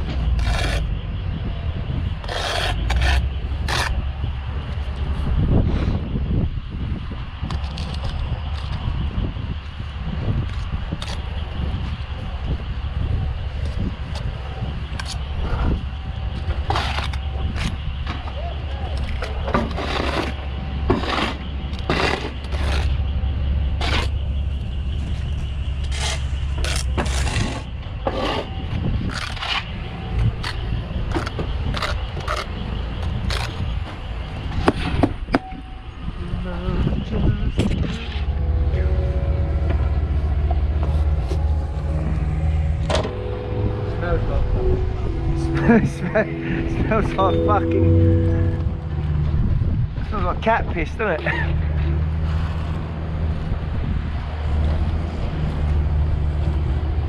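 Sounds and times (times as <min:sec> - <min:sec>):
low rumble: 0:37.0 - 0:54.4.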